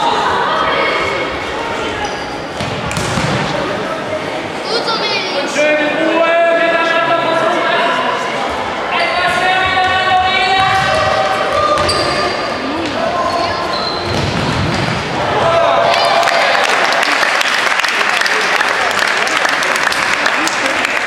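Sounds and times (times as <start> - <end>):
players shouting: 14.9 - 18.1
spectators clapping and cheering: 15.2 - 21.0.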